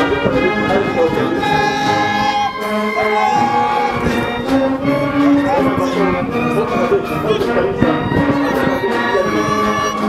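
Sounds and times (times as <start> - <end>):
brass band playing held chords: 0.0 - 10.0.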